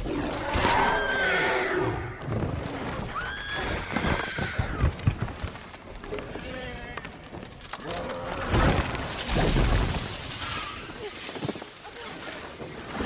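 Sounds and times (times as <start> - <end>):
thuds of falling through branches: 7.0 - 11.6.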